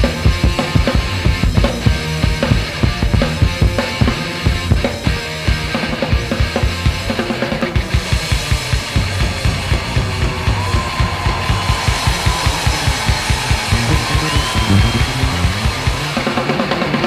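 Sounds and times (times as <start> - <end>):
punk rock band playing live: 0.0 - 17.0.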